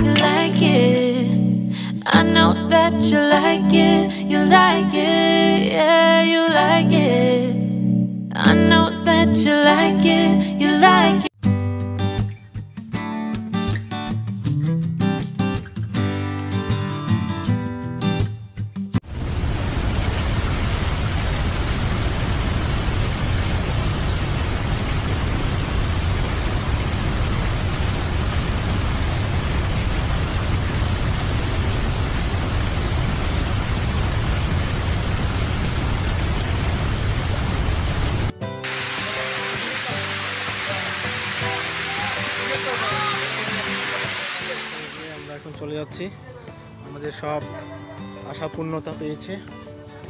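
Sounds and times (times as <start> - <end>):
hissy water sound: 19.1 - 45.5
waterfall rushing: 19.1 - 45.5.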